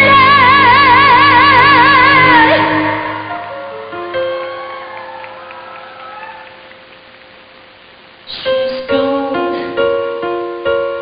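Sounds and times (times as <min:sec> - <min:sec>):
whoops: 0:04.2 - 0:06.7
audience cheering and applauding: 0:04.2 - 0:07.2.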